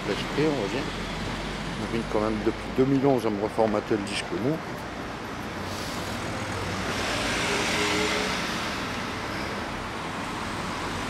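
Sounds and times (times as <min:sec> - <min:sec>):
low hum of traffic: 0:00.0 - 0:11.0
motor vehicle passing: 0:00.0 - 0:11.0.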